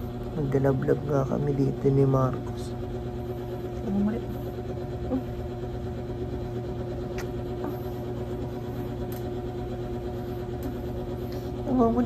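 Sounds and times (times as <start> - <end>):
small motor humming: 0.0 - 12.0.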